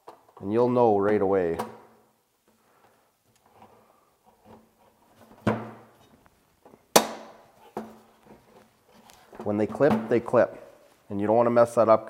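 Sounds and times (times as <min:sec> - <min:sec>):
faint handling noise: 0:02.4 - 0:11.2.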